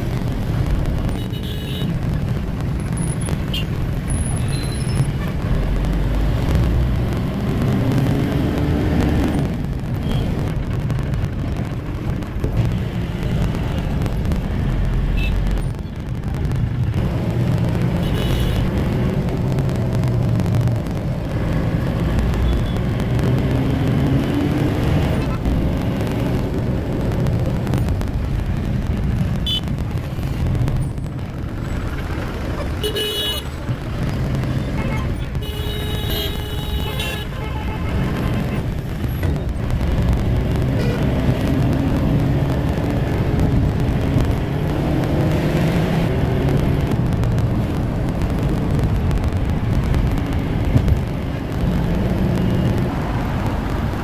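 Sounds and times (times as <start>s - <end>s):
van engine and road rumble: 0.0s - 54.0s.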